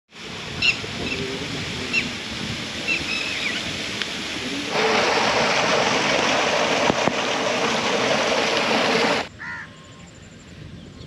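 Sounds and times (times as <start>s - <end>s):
steady rain hiss: 0.1s - 9.3s
bird calling: 2.8s - 3.7s.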